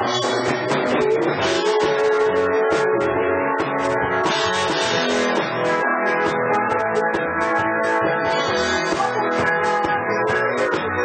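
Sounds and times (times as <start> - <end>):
drums: 0.0 - 11.0
electric guitar: 0.0 - 11.0.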